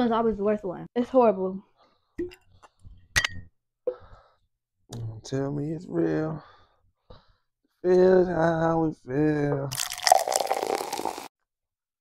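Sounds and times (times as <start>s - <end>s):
liquor pouring into a cup: 9.7s - 11.3s.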